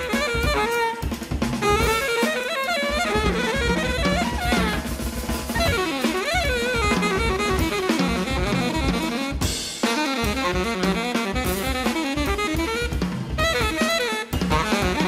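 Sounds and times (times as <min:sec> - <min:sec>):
alto saxophone solo: 0:00.0 - 0:15.0
drum kit playing: 0:00.0 - 0:15.0.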